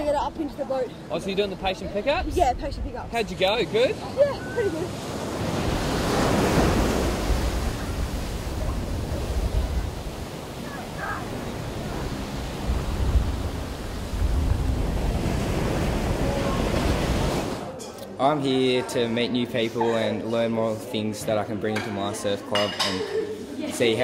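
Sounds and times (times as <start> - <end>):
waves breaking in surf: 3.4 - 17.7
wind buffeting microphone: 4.1 - 17.6.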